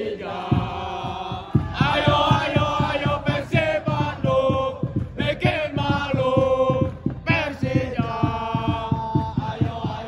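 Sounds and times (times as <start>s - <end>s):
football supporters chanting: 0.0s - 10.0s
regular low thuds: 0.4s - 10.0s.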